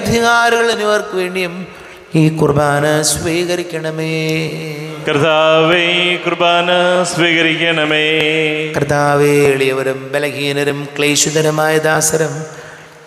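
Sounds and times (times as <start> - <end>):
man chanting prayer into microphone: 0.0 - 12.6.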